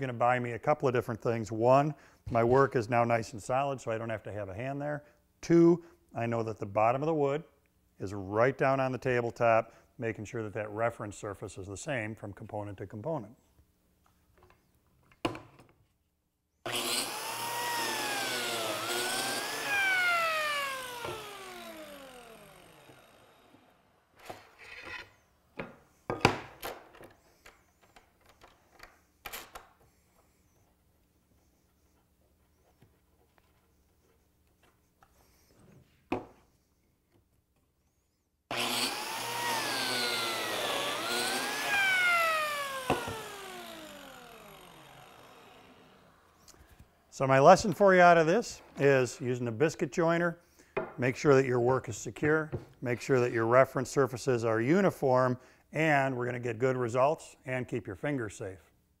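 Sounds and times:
biscuit joiner motor whine: 0:16.7 - 0:23.8, 0:38.5 - 0:46.5.

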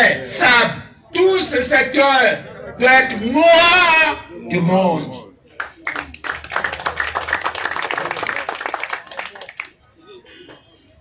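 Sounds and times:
audience clapping: 0:05.6 - 0:09.8.

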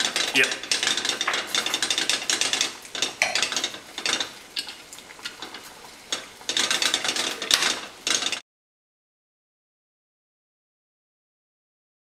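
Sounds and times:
wire whisk beating in ceramic bowl: 0:00.0 - 0:08.4.

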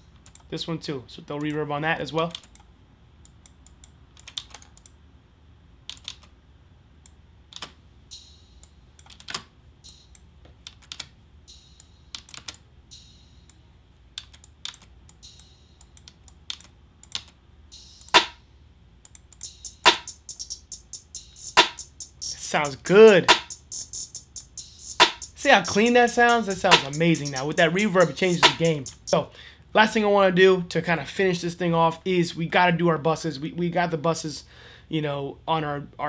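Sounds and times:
keyboard and mouse clicks: 0:00.1 - 0:00.5, 0:02.3 - 0:05.0, 0:05.9 - 0:06.3, 0:07.0 - 0:07.8, 0:08.6 - 0:11.2, 0:11.8 - 0:12.6, 0:13.5 - 0:17.4, 0:19.0 - 0:20.3
faint beat with hi-hats: 0:08.0 - 0:09.0, 0:09.8 - 0:10.4, 0:11.4 - 0:13.9, 0:15.0 - 0:16.5, 0:17.6 - 0:18.5, 0:19.1 - 0:29.3.

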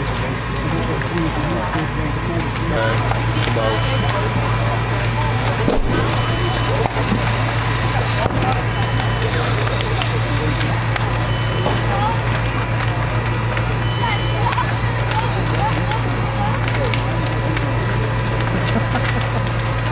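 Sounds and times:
engine and pump humming: 0:00.0 - 0:19.9
voices talking: 0:00.0 - 0:19.9
water spraying: 0:02.8 - 0:10.9.

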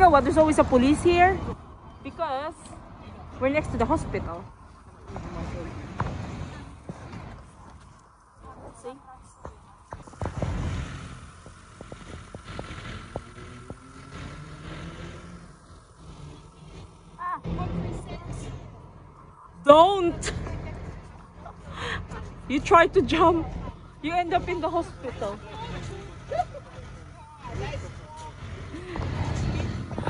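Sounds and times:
bus engine passing: 0:00.0 - 0:09.0, 0:09.6 - 0:30.0
street traffic: 0:00.0 - 0:30.0.

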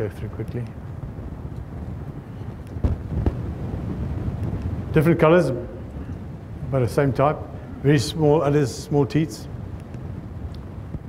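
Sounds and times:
low rumbling on microphone: 0:00.0 - 0:11.0.

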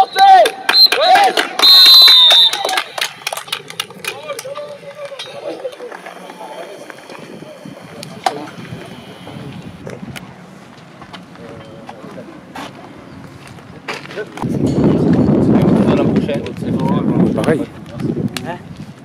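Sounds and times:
referee's whistle blast: 0:00.0 - 0:03.1
distant voices of players: 0:00.0 - 0:14.5.

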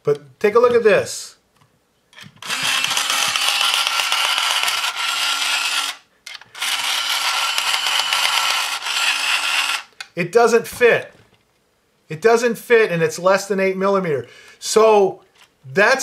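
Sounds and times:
electric pencil sharpener motor: 0:02.4 - 0:06.0, 0:06.6 - 0:09.9.

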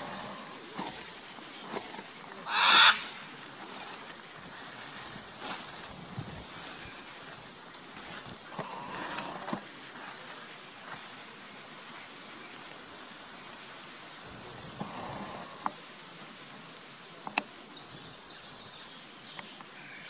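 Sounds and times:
faint hiss: 0:00.0 - 0:20.0
macaw squawk: 0:02.4 - 0:03.2.

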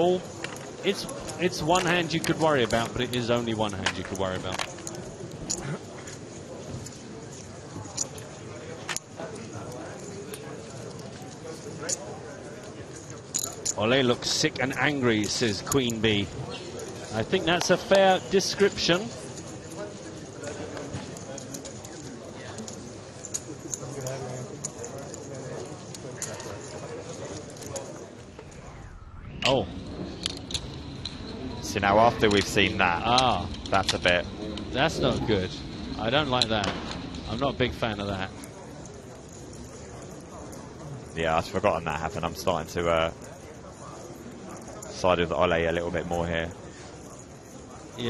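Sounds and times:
low background voices: 0:00.0 - 0:48.0.

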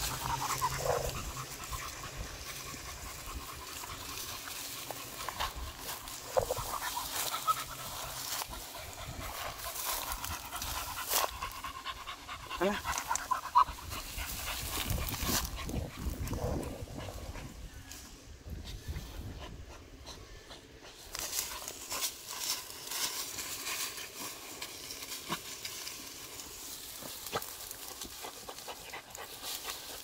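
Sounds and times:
grass rustling and snapping: 0:00.0 - 0:17.1, 0:20.9 - 0:30.0
dog panting: 0:00.0 - 0:17.5.

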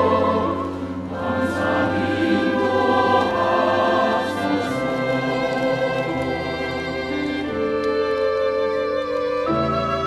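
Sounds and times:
choir singing a hymn: 0:00.0 - 0:07.8.

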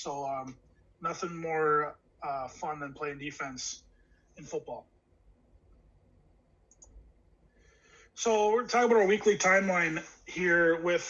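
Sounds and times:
computer mouse clicks: 0:06.7 - 0:07.0.

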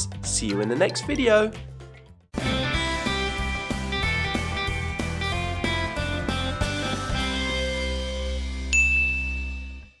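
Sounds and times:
bright chime: 0:08.7 - 0:10.0.

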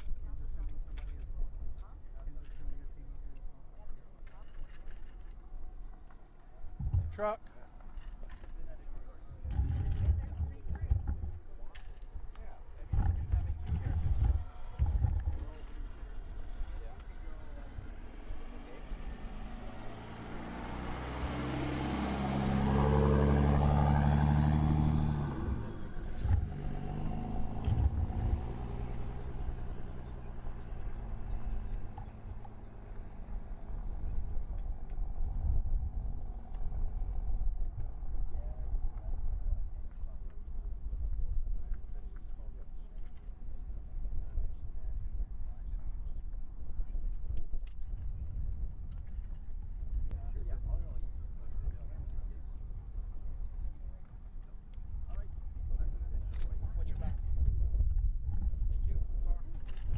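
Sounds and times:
vehicle engine and road noise: 0:00.0 - 0:59.9
low rumbling thumps: 0:06.7 - 0:08.1, 0:09.2 - 0:21.3, 0:22.3 - 0:42.0.

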